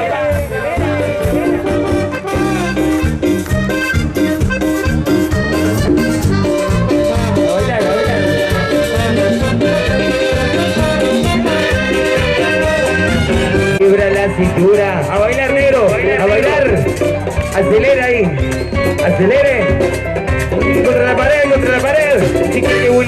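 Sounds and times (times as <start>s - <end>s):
live dance band music: 0.0s - 23.0s.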